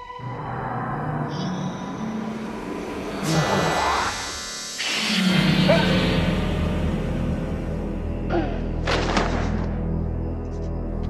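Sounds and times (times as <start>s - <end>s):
sustained low drone: 0.0s - 8.8s.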